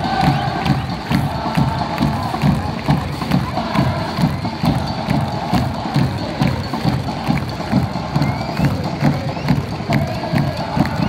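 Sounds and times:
bass drums beating: 0.0s - 11.0s
crowd chanting: 0.0s - 11.0s.

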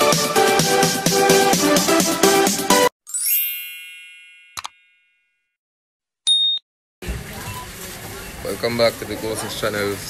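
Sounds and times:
glittering chime effect: 3.1s - 5.4s.

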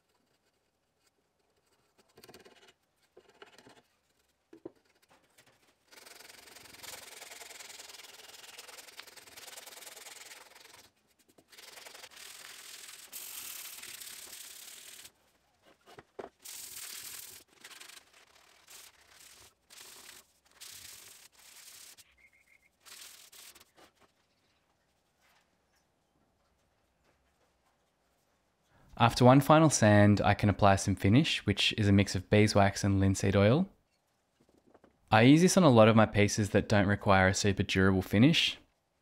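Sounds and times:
hand sanding wood: 5.9s - 15.1s, 16.4s - 22.0s, 22.8s - 24.0s.

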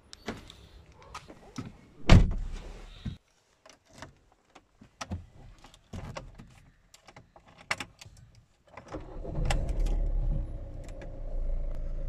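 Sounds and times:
car engine starting and idling: 8.8s - 12.0s.

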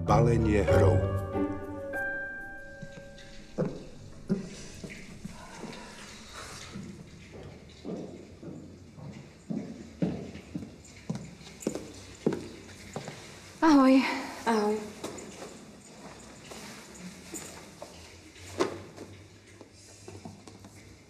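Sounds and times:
clicking footsteps: 2.7s - 13.6s, 14.8s - 21.0s.

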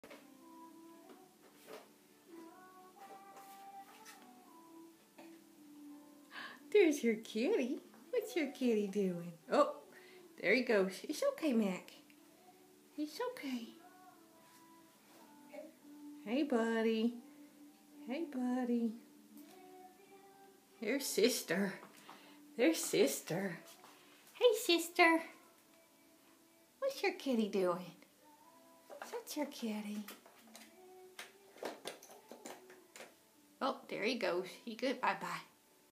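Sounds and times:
faint steady background tones: 0.1s - 35.9s.

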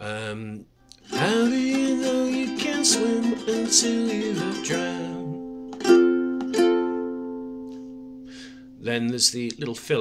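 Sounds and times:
ukulele chord strummed: 1.0s - 8.8s.

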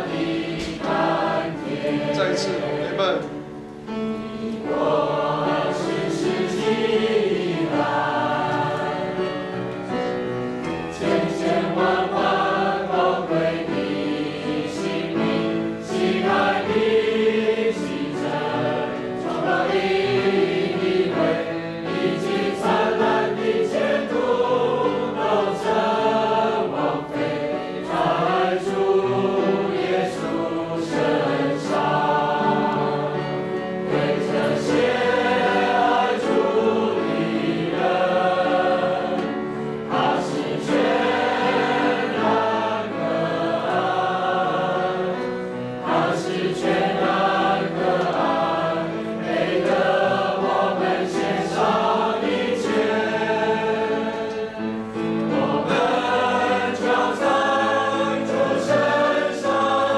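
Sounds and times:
congregation singing a hymn: 0.0s - 59.9s
men leading the singing: 0.0s - 59.9s.

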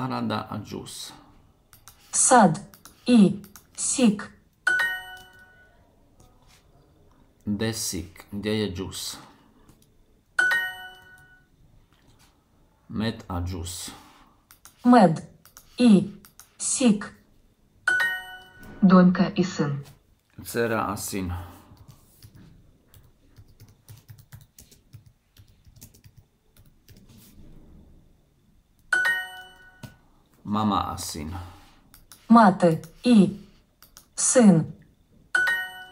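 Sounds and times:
computer keyboard typing: 1.7s - 3.8s, 4.7s - 5.5s, 14.4s - 16.6s, 21.7s - 27.2s, 31.9s - 33.2s, 33.8s - 34.2s
electronic correct-answer chime: 35.4s - 35.9s.

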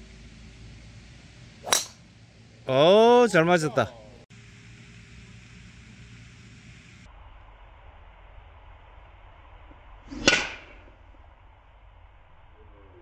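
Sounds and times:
golf club hitting ball: 1.6s - 2.0s
golf club swish: 1.6s - 2.0s.

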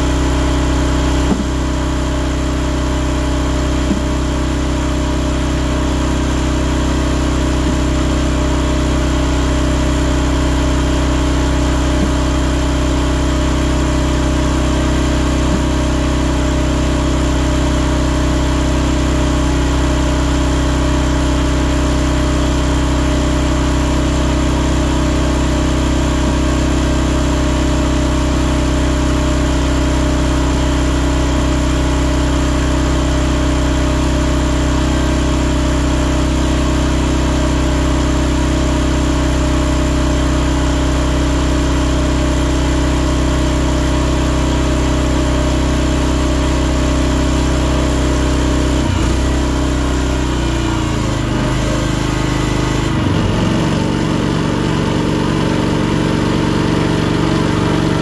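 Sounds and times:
log splitter gas engine running: 0.0s - 58.0s.

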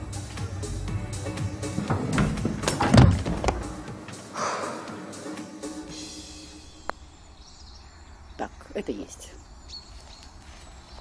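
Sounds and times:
faint outdoor ambience: 0.0s - 11.0s
faint birdsong: 5.9s - 11.0s.

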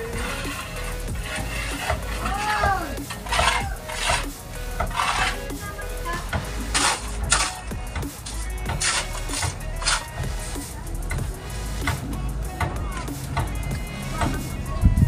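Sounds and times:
trowel scraping mortar: 0.0s - 10.8s
background music: 0.0s - 15.0s.

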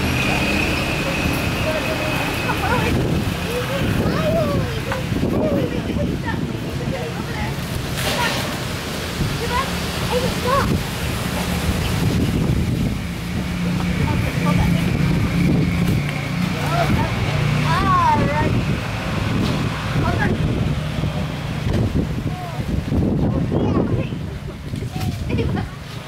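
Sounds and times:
low engine-like hum: 0.0s - 26.0s
child's high gliding voice: 3.6s - 5.7s.

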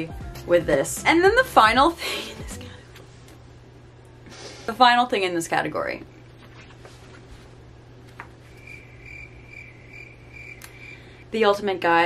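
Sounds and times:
cricket chirping: 8.5s - 11.2s.

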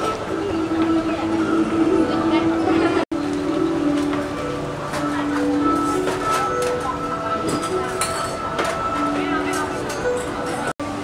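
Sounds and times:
murmur of voices: 0.0s - 10.7s
background music with held notes: 0.0s - 11.0s.

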